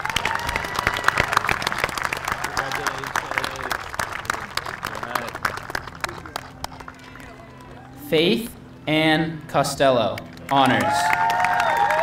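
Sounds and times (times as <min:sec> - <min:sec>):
crowd applauding: 0:00.0 - 0:08.0, 0:10.2 - 0:12.0
voices calling out: 0:02.4 - 0:12.0.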